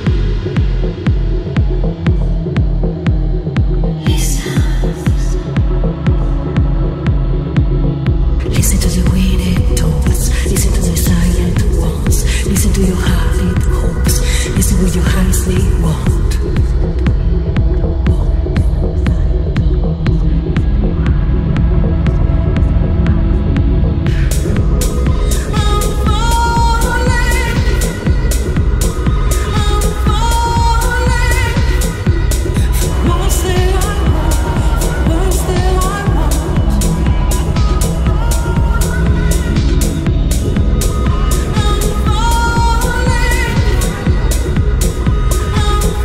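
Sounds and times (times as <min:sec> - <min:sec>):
electronic house music: 0:00.0 - 0:46.0
kick drum: 0:00.0 - 0:46.0
synth bass: 0:00.0 - 0:46.0.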